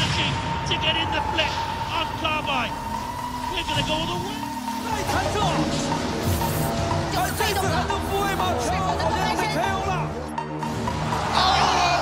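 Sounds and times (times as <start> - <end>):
steady high tone: 1.6 - 8.2.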